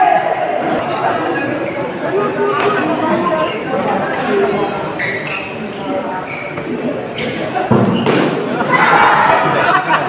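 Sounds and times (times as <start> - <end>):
spectators chattering: 0.0 - 10.0
loud thud: 7.7 - 8.6
crowd reacting: 8.2 - 10.0.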